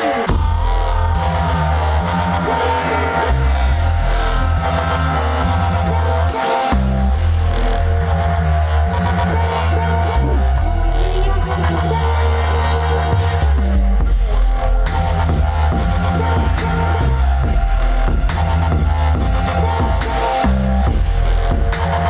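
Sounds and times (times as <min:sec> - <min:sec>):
electronic dance music: 0:00.0 - 0:22.0
heavy bass line: 0:00.0 - 0:22.0.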